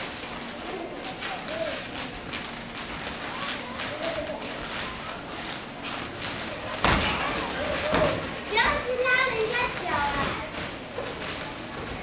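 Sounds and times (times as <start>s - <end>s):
children's voices: 6.6s - 12.0s.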